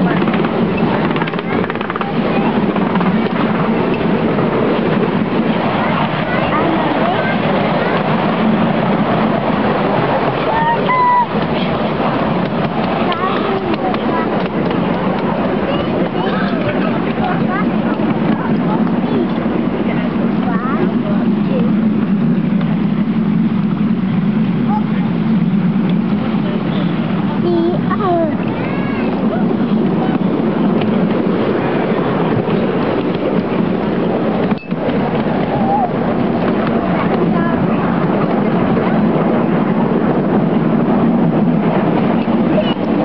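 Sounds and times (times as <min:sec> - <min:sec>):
miniature train rumbling on track: 0:00.0 - 0:43.0.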